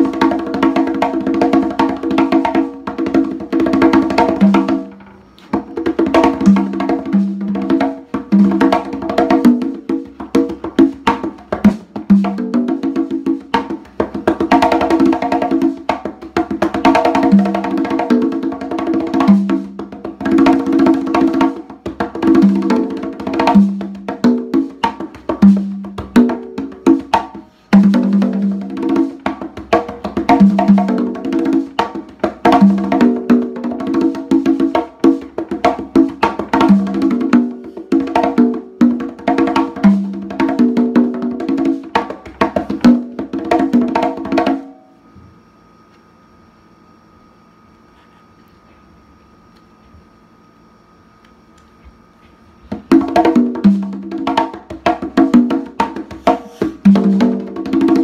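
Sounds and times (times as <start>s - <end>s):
congas played by hand: 0.0s - 44.9s, 52.7s - 58.0s.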